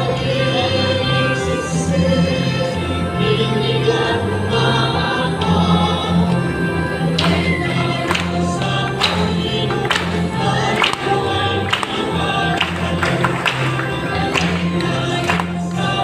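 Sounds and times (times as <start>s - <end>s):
choir singing a hymn: 0.0s - 16.0s
instrumental accompaniment: 0.0s - 16.0s.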